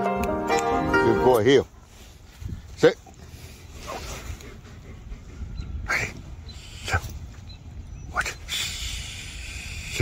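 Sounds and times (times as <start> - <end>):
steady low rumble: 1.7 - 10.0.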